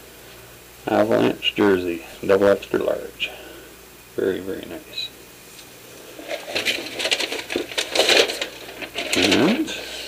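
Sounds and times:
paper and packaging rustling: 6.0 - 10.0.

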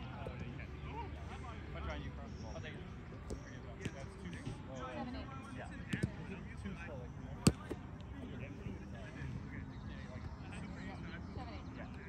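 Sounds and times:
soft ball taps: 3.1 - 4.6, 5.9 - 6.1, 7.4 - 8.1
ball smacked loudly: 7.5 - 7.8.

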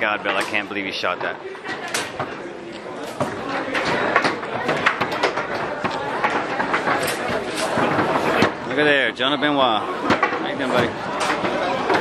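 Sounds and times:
crowd chatter in a hall: 0.0 - 12.0
foosball balls and rods clacking: 0.0 - 12.0.

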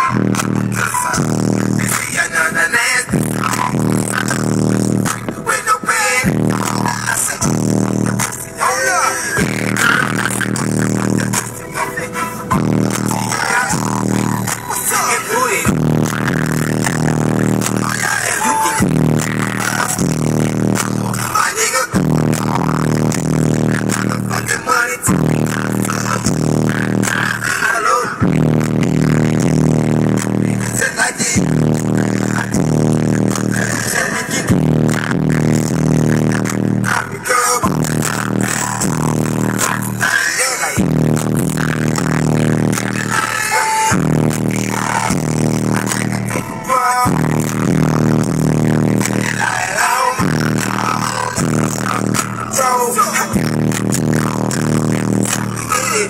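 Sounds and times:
heavy bass beat: 0.0 - 56.0
rap vocals: 0.0 - 56.0.

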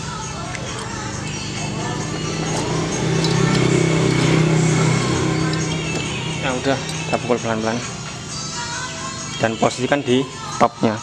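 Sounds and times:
background music: 0.0 - 11.0
passing vehicle engine hum: 0.3 - 10.5.

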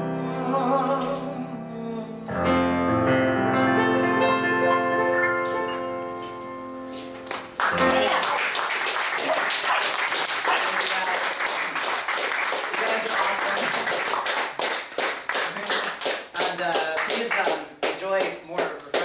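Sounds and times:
people clapping: 7.2 - 19.0.

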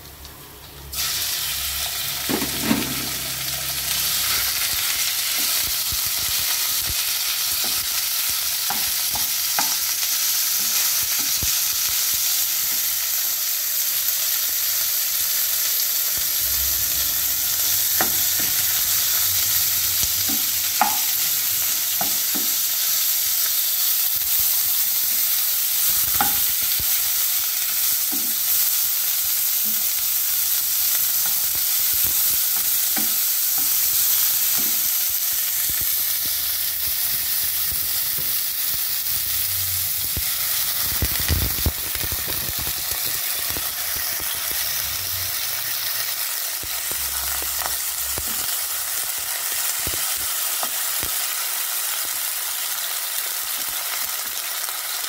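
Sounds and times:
meat sizzling in a wok: 0.0 - 55.0.

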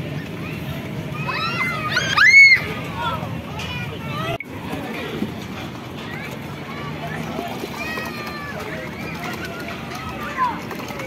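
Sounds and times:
children shouting: 0.0 - 4.4, 6.0 - 11.0
crowd chatter: 0.0 - 11.0.

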